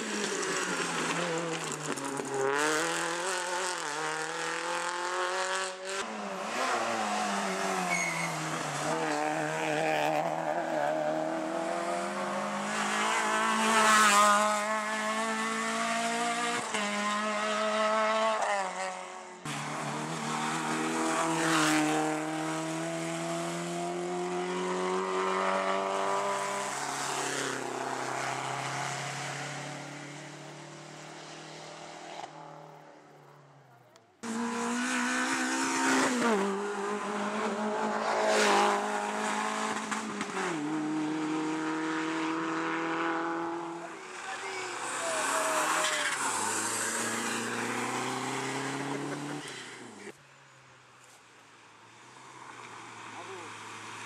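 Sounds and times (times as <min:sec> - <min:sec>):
rally car engine at full throttle: 0:00.0 - 0:33.0, 0:33.8 - 0:50.2.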